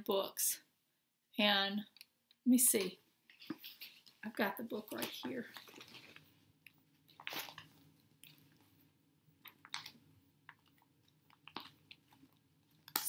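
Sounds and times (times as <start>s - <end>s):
rustles and light taps of objects: 2.8s - 12.4s.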